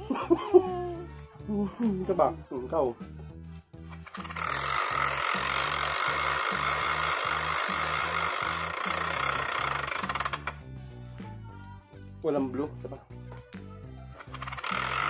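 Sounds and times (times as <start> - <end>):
background music with bass line: 0.0 - 15.0
spinning prize wheel clatter: 3.9 - 10.6, 14.2 - 15.0.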